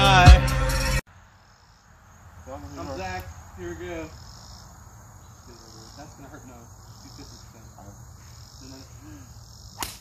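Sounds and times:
high-pitched insect chorus: 0:01.1 - 0:10.0.

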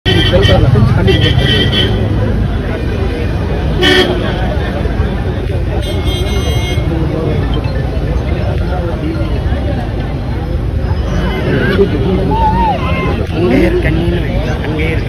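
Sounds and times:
crowd chatter: 0:00.0 - 0:15.0
car horn tooting: 0:00.1 - 0:02.1, 0:05.8 - 0:06.9.

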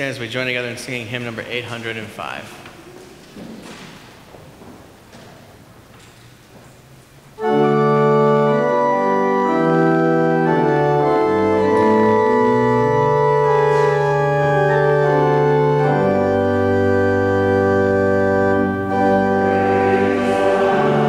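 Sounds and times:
church organ playing a hymn: 0:07.4 - 0:21.0.

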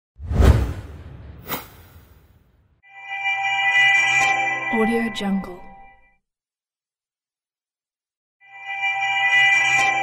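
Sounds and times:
whoosh sound effect: 0:00.2 - 0:02.4.

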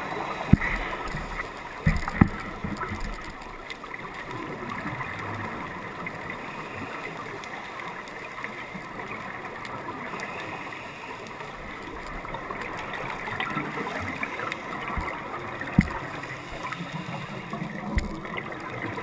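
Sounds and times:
underwater bubbles gurgling: 0:00.0 - 0:19.0.

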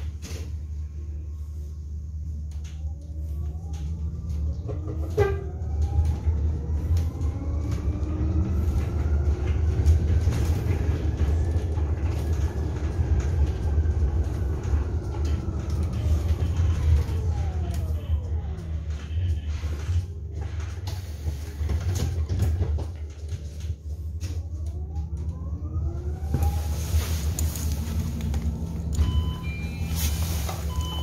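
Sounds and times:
low road rumble: 0:00.0 - 0:31.0.

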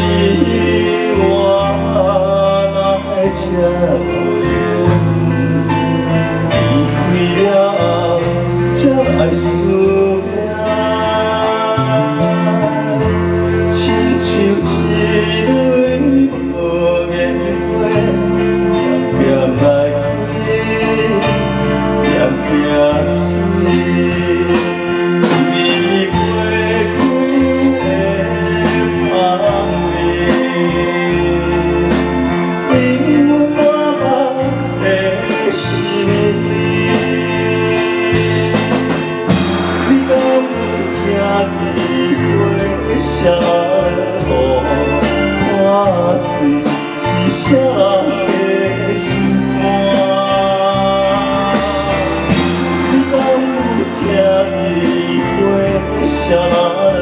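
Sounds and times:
live band playing: 0:00.0 - 0:57.0
man singing into a microphone: 0:00.0 - 0:57.0.

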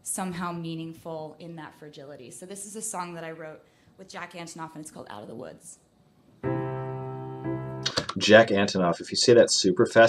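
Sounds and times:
grand piano chords ringing: 0:06.4 - 0:08.0.

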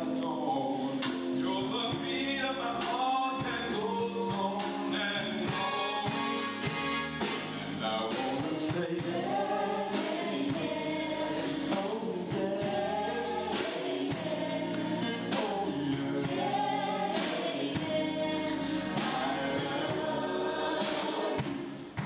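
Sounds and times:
male lead vocal: 0:00.0 - 0:06.6, 0:07.7 - 0:22.0
group singing gospel harmony: 0:00.0 - 0:22.0
instrumental backing: 0:00.0 - 0:22.0.

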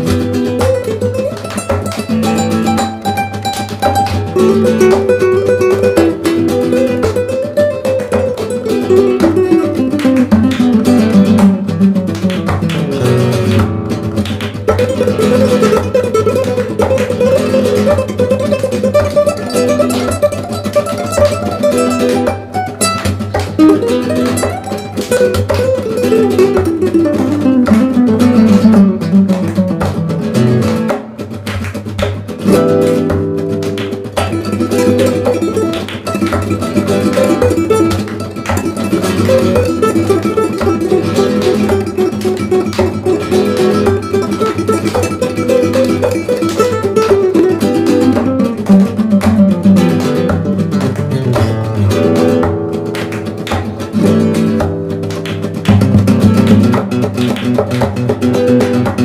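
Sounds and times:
classical guitar duet: 0:00.0 - 0:59.0.

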